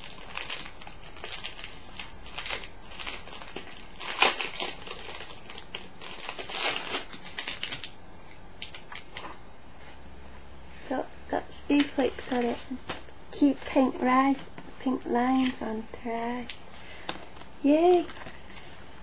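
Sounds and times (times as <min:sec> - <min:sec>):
paper crinkling: 0:00.0 - 0:08.0.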